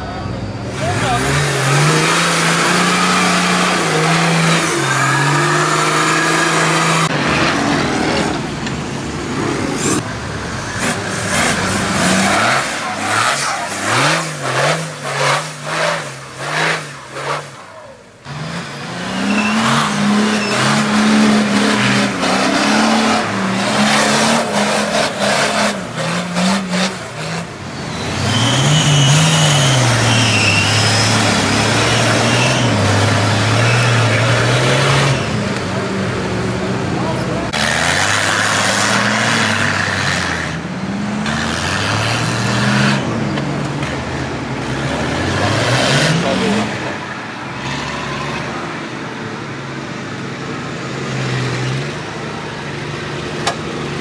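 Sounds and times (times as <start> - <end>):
off-road engines revving: 0.0 - 54.0.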